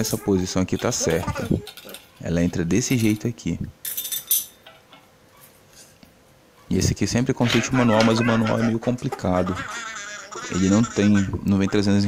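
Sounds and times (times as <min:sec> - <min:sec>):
metallic clinks: 0:02.9 - 0:04.9.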